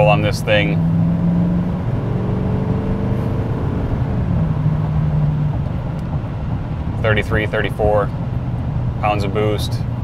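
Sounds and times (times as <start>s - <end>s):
diesel engine drone: 0.0s - 10.0s
road noise: 0.0s - 10.0s.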